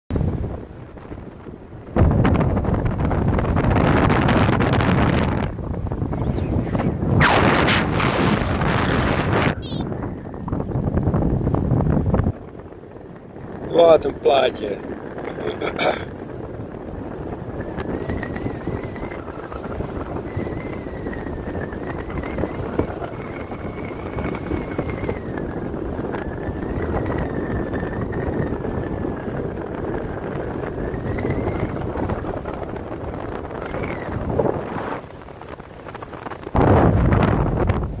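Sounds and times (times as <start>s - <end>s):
wind rushing over microphone: 0.1s - 38.0s.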